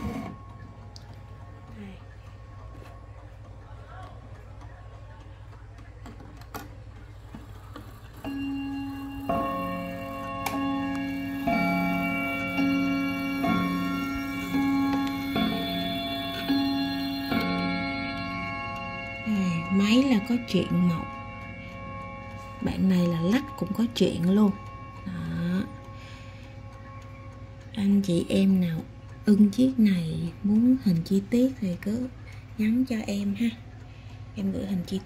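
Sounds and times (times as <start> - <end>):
clock striking on gongs: 0.0 - 35.0
clock mechanism click: 4.3 - 35.0.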